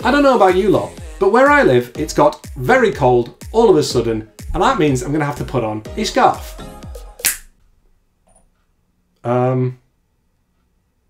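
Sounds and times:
finger snap: 7.2s - 7.5s.

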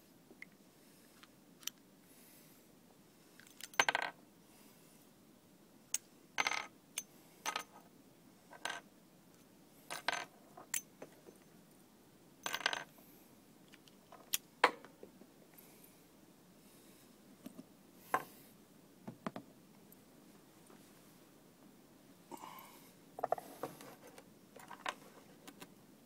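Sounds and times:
metal cartridges clinking: 12.4s - 12.9s.

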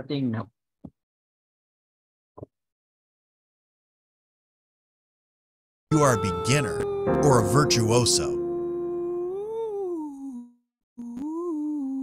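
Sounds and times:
man singing one note: 5.9s - 8.9s.

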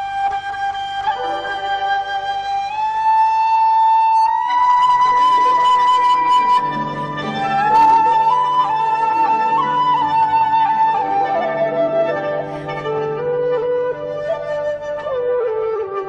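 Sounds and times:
flute playing long notes: 0.0s - 16.0s.

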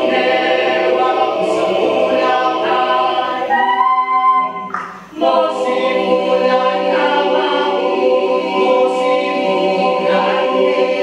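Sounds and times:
hissing consonant: 0.0s - 11.0s
mixed choir singing a cappella: 0.0s - 11.0s.

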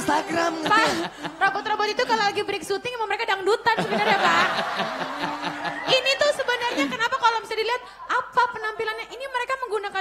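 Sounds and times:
man speaking: 0.0s - 1.1s
man laughing: 0.0s - 1.4s.

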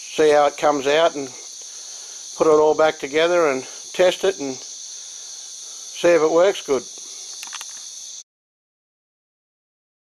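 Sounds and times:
crickets chirping: 0.0s - 8.3s.

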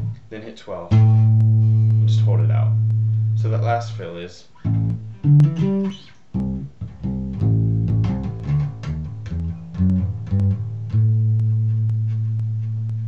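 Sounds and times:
electric bass guitar notes: 0.0s - 13.0s.

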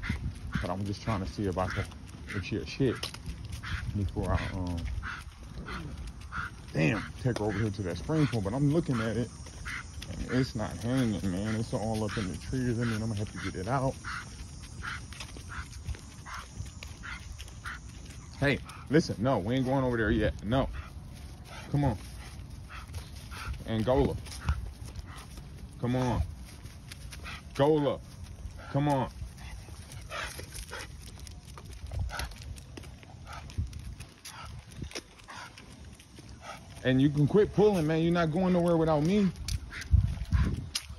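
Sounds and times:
dog panting hard: 0.0s - 40.9s
footsteps on pavement: 0.0s - 40.9s.

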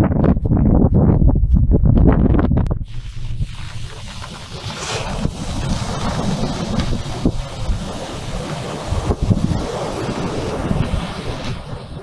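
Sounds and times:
wind buffeting microphone: 0.0s - 12.0s
ocean surf breaking: 2.9s - 12.0s.

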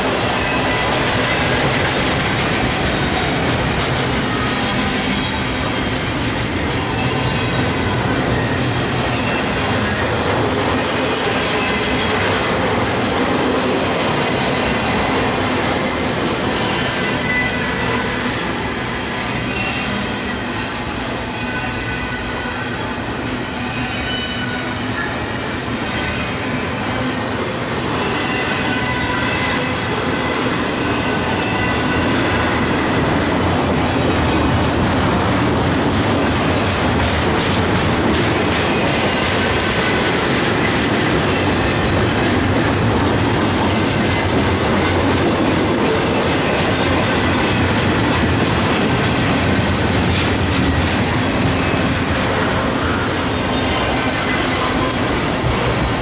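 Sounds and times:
steel wheels rumbling on rail: 0.0s - 56.0s
high wheel squeal: 0.1s - 13.0s, 13.9s - 27.1s, 27.9s - 33.4s.

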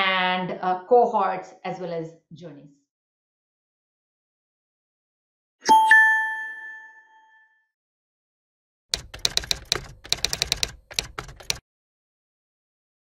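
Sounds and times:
bright two-tone chime: 5.6s - 7.4s
typewriter keystroke clicks: 8.9s - 11.6s.

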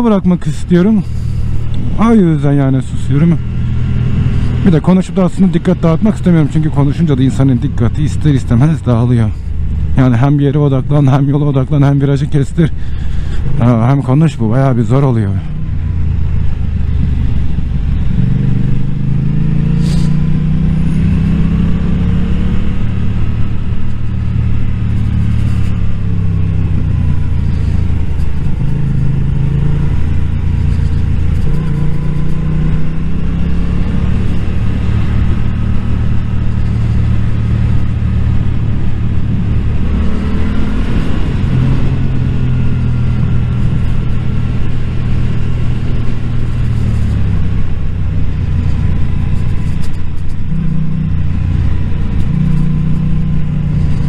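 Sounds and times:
motorcycle engine revving: 0.0s - 54.0s
wind noise on microphone: 16.0s - 54.0s.

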